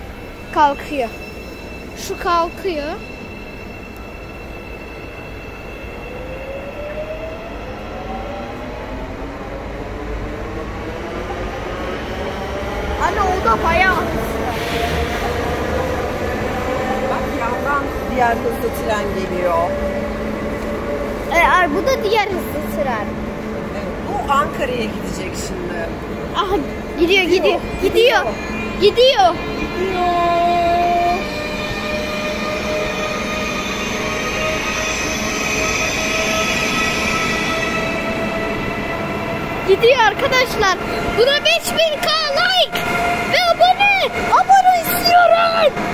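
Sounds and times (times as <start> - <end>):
electric train rumble: 0.0 - 45.9
train hum: 0.0 - 45.9.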